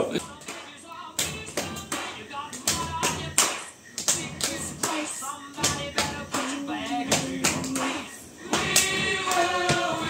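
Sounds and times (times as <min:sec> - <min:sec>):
television music and voices: 0:00.0 - 0:10.0
hand claps: 0:00.2 - 0:10.0.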